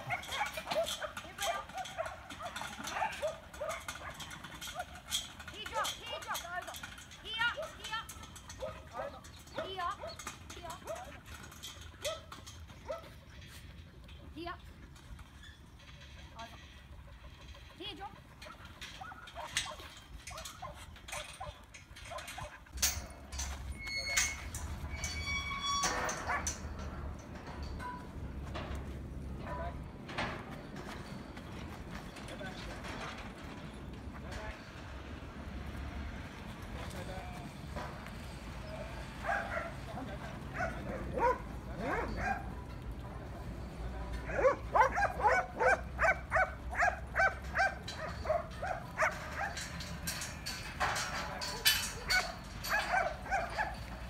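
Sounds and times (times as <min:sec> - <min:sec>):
dog barking: 0:00.1 - 0:04.9, 0:40.5 - 0:42.5, 0:44.3 - 0:49.6, 0:52.1 - 0:53.8.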